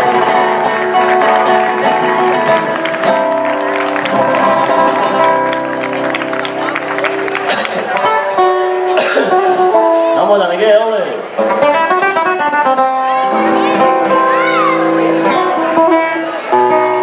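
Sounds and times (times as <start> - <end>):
flamenco guitar: 0.0 - 17.0.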